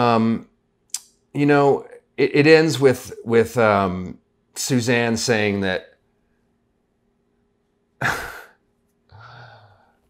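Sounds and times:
man sighing: 8.0 - 10.0.

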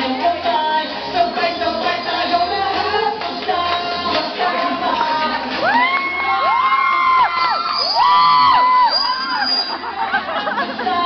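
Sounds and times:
music playing: 0.0 - 11.0
audience screaming and cheering: 5.4 - 11.0.

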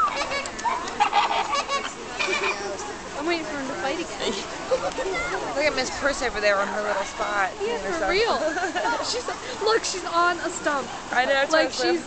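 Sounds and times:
flamingos honking: 0.0 - 2.8.

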